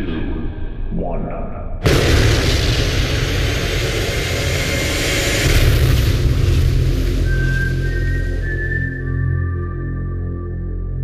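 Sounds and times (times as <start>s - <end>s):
rushing whoosh: 1.8s - 9.2s
deep rumbling boom: 1.8s - 9.6s.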